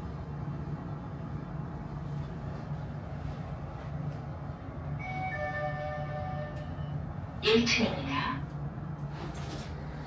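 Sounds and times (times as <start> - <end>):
elevator low hum: 0.0 - 10.0
two-note elevator chime: 5.0 - 6.9.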